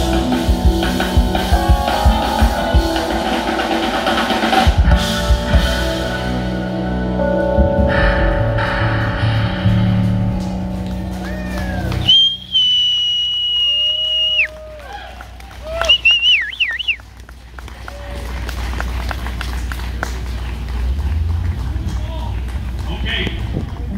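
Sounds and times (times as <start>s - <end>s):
live band song: 0.0s - 14.5s
crowd cheering: 10.3s - 23.9s
audience whistling: 11.2s - 15.0s, 15.6s - 17.1s
scattered clapping: 13.4s - 23.9s.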